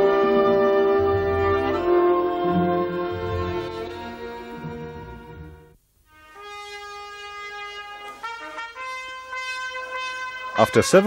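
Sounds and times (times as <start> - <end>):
solo trumpet playing: 0.0 - 11.0.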